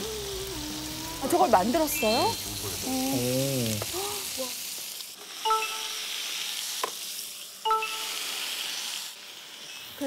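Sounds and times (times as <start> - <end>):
meat sizzling on a grill: 0.0 - 10.0
short beeps: 5.5 - 6.0, 7.7 - 8.2.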